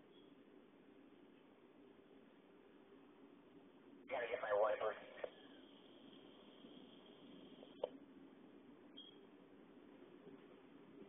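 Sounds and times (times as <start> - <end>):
voice over two-way radio: 4.1 - 5.4
radio click: 4.7 - 5.4.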